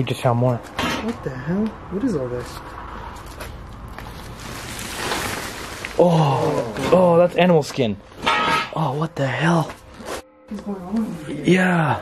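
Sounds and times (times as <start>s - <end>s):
plastic tarp crinkling: 4.0s - 7.7s.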